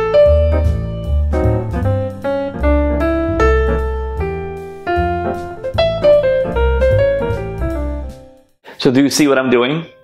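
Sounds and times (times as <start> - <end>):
solo jazz piano: 0.0 - 8.6.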